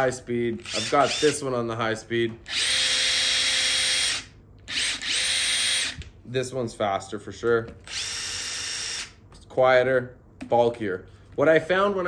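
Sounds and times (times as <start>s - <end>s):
impact driver high whine: 0.6s - 1.4s, 2.4s - 6.0s.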